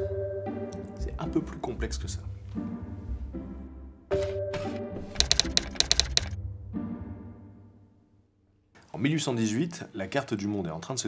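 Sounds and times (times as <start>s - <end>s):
keyboard typing clicks: 5.2s - 6.4s.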